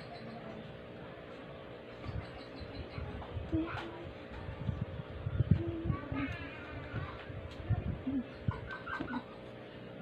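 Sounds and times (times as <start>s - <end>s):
bird clucking: 8.2s - 9.5s.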